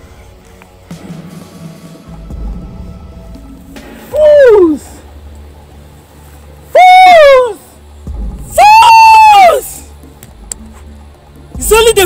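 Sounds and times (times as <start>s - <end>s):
low background music: 0.0s - 12.0s
high-pitched screams: 4.1s - 5.0s, 6.7s - 7.7s, 8.5s - 9.9s.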